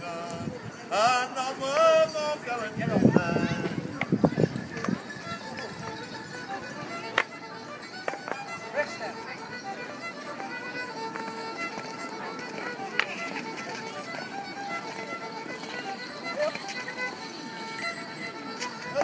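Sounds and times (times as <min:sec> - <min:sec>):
fiddle playing lively tune: 0:00.0 - 0:19.0
murmur of outdoor crowd: 0:00.0 - 0:19.0.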